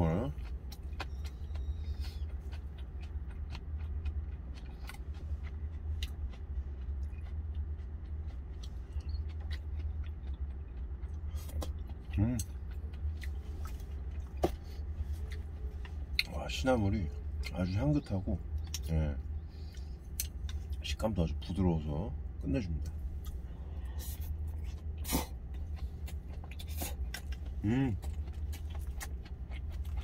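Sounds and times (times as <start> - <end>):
close chewing: 0.0 - 21.5, 22.8 - 30.0
idling truck engine hum: 0.0 - 30.0.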